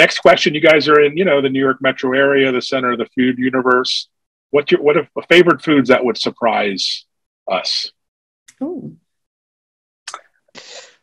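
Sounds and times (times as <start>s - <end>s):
mouth click: 10.1s - 10.8s
person drawing breath: 10.6s - 11.0s.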